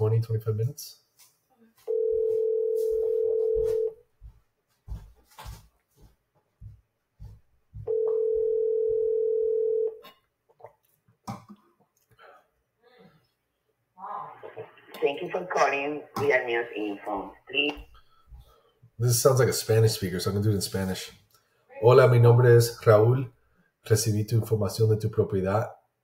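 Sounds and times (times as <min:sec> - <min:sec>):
phone ringback tone: 0:01.9 - 0:04.0, 0:07.9 - 0:10.0.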